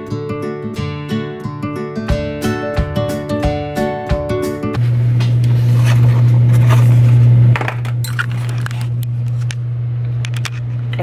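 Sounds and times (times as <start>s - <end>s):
steady low hum: 4.8s - 11.0s.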